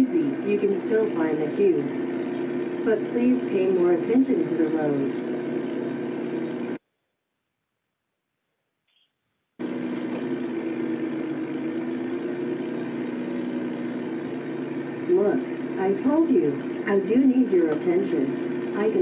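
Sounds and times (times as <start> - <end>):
simulated engine hum: 0.0 - 6.8, 9.6 - 19.0.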